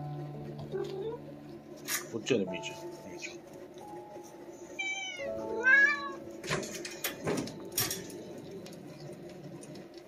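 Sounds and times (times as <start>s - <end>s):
steady background tone: 0.0s - 10.0s
cat meowing: 4.8s - 6.2s.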